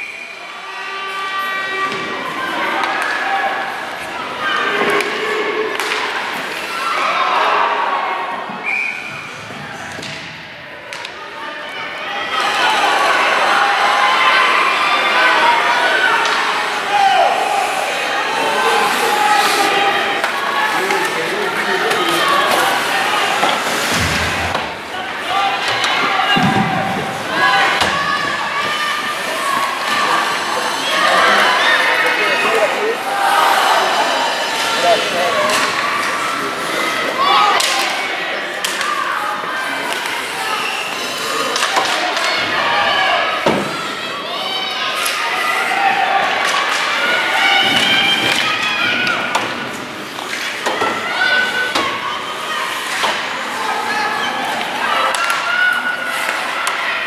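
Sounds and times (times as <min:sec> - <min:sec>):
crowd chattering and cheering: 0:00.0 - 0:57.0.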